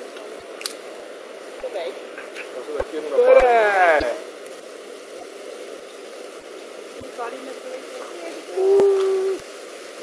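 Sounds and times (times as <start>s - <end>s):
faint background hiss: 0.0s - 10.0s
hoot-like held voice: 8.6s - 9.4s.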